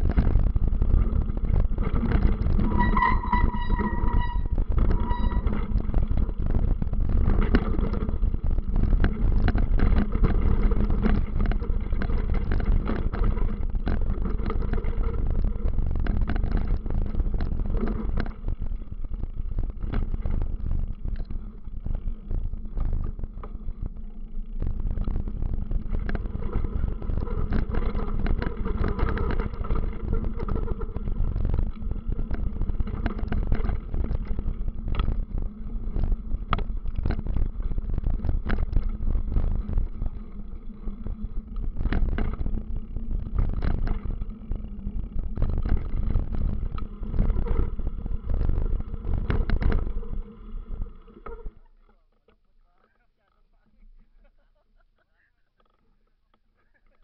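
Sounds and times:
low rumble: 0.0 - 51.6
rapid rattling and knocking: 0.0 - 51.6.

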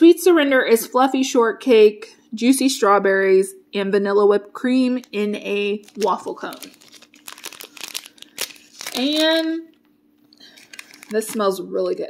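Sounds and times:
plastic bag crinkling: 5.0 - 9.7, 10.4 - 11.6.

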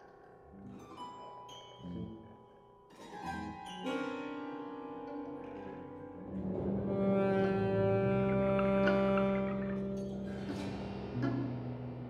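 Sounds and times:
chamber ensemble playing held notes: 3.2 - 12.0.

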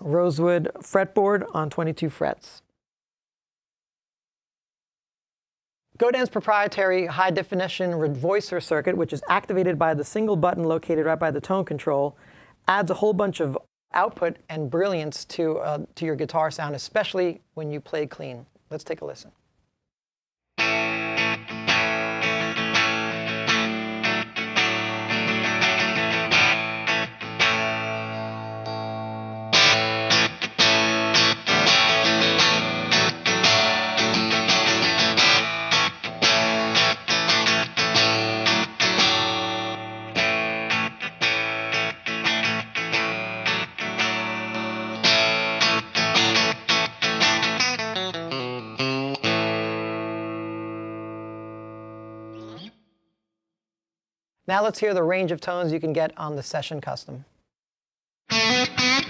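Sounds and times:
clean electric guitar: 20.6 - 52.8, 58.3 - 59.0.

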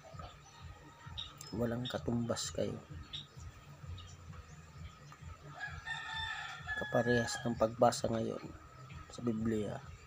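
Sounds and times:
rooster crowing: 5.5 - 7.8.

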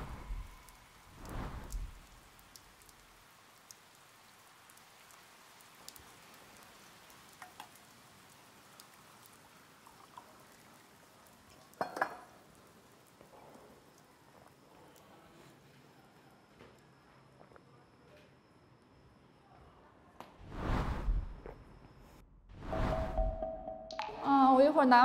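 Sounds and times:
light rain dripping: 0.0 - 17.8, 22.7 - 25.0.

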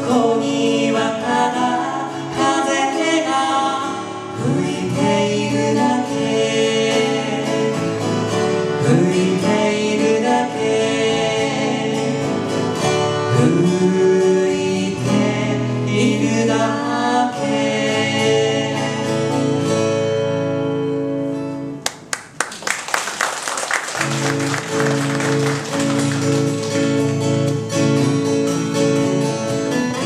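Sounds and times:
man and woman singing: 0.0 - 19.5
acoustic guitars: 0.0 - 30.0
applause: 21.8 - 27.6.

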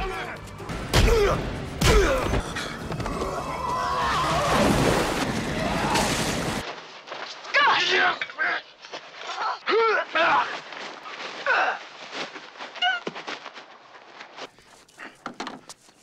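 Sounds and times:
man grunting and crying out: 1.0 - 2.4
noisy fight scuffle: 6.6 - 16.0.

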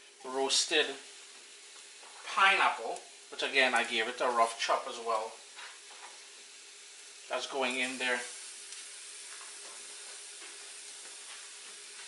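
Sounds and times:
fruit sizzling in a skillet: 0.0 - 12.0.

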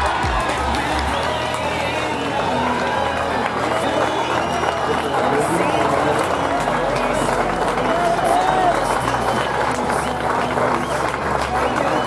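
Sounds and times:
people calling and chattering: 0.0 - 12.0.

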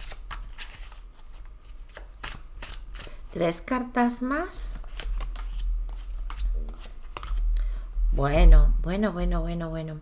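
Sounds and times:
cards being shuffled: 0.0 - 3.3, 4.7 - 7.5.

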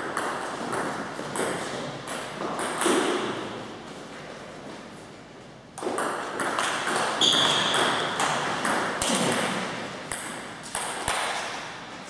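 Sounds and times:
ping pong ball clicking off bats: 0.0 - 3.4, 5.8 - 11.7.

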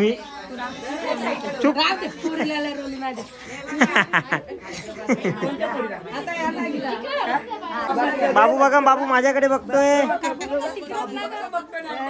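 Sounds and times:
women's voices chattering: 0.0 - 12.0.

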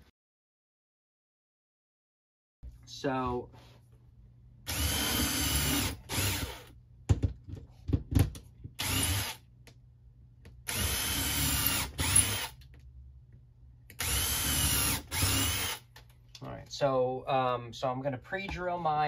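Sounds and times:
cordless drill motor whine: 4.7 - 6.7, 8.8 - 9.4, 10.7 - 12.5, 14.0 - 15.8.

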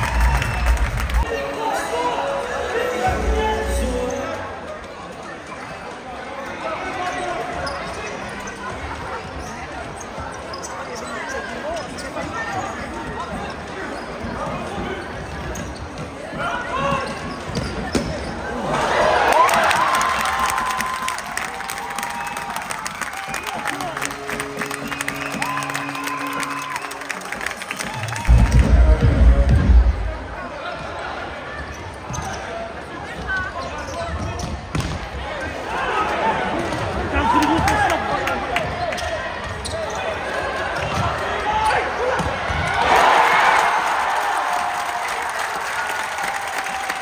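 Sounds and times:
players and spectators talking: 0.0 - 47.0.

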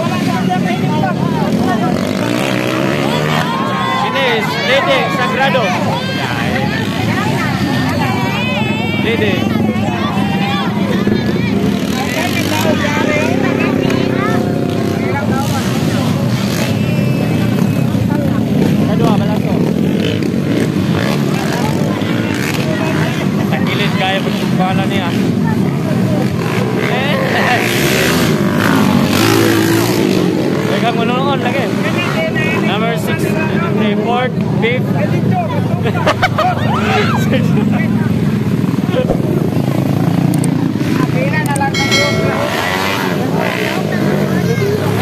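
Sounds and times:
crowd voices: 0.0 - 45.0
motorcycle engines revving: 0.0 - 45.0.

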